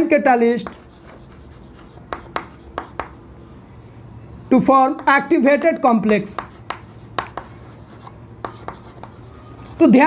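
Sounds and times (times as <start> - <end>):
chalk writing on chalkboard: 0.6 - 3.2, 5.0 - 10.0.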